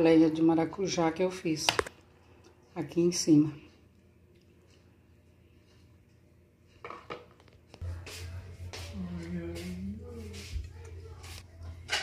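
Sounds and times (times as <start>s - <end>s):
steady low hum: 7.5s - 12.0s.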